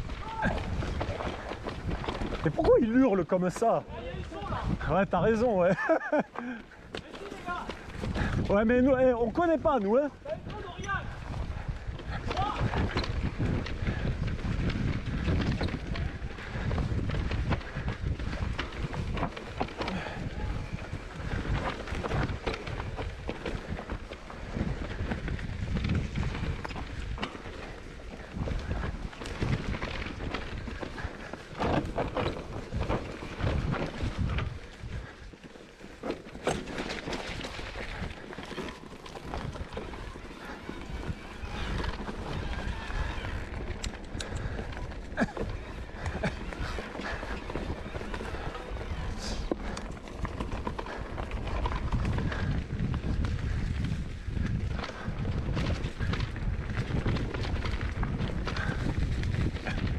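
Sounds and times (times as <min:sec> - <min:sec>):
bike rattling over bumps: 0:00.0 - 0:59.9
tyres rolling over dirt: 0:00.0 - 0:59.9
wind on microphone: 0:03.8 - 0:05.4, 0:07.5 - 0:09.4, 0:10.1 - 0:35.3, 0:37.0 - 0:59.9.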